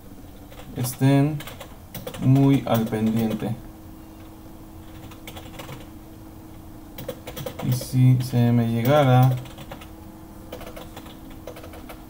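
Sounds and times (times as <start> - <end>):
computer keyboard typing: 0.5 - 3.6, 4.9 - 5.9, 7.0 - 9.9, 10.5 - 12.0.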